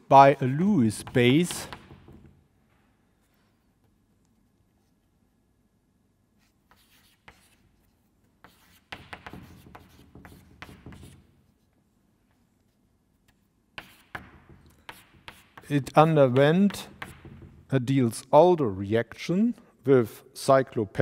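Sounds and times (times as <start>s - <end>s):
chalk scraping on blackboard: 6.4s - 11.6s, 13.8s - 15.8s.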